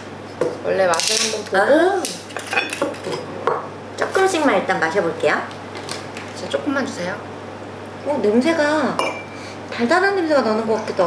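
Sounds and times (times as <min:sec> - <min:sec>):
glass bottles and glasses clinking: 0:09.0 - 0:09.4.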